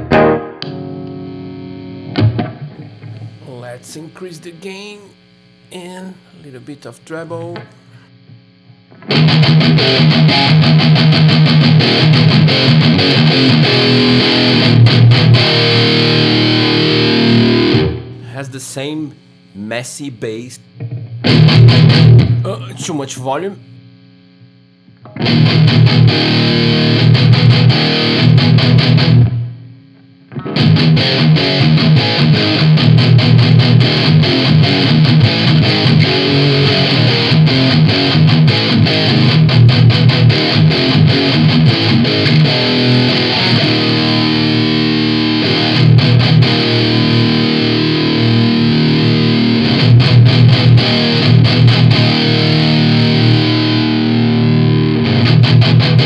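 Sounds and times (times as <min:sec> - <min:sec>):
distorted electric guitar riffing: 0:00.0 - 0:23.8, 0:25.0 - 0:29.7, 0:30.3 - 0:56.0.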